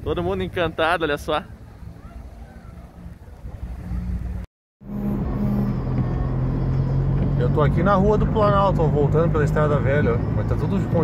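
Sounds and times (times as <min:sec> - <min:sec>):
faint outdoor rumble: 0:00.0 - 0:11.0
car engine hum from inside: 0:01.5 - 0:11.0.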